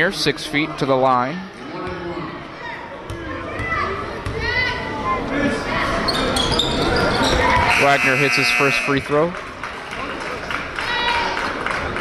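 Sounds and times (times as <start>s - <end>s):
echoing chatter of voices: 0.0s - 12.0s
high shrill voices: 7.7s - 9.0s.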